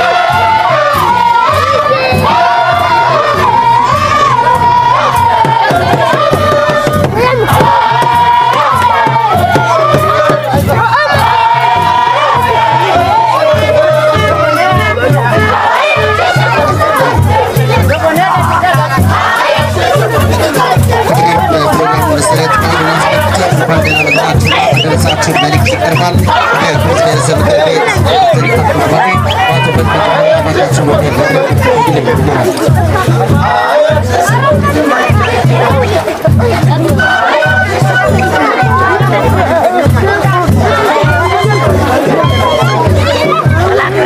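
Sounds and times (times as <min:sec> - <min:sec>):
crowd singing and chattering: 0:00.0 - 0:44.0
large drums beating: 0:00.0 - 0:44.0.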